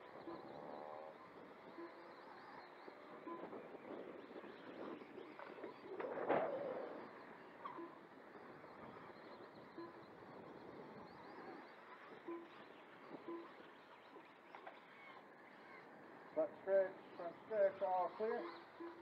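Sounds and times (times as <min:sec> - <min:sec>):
electric rc motorcycles running: 0:00.0 - 0:19.0.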